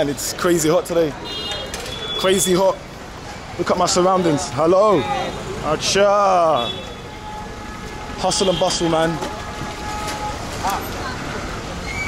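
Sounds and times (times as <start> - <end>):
motor scooters passing: 2.8 - 12.0.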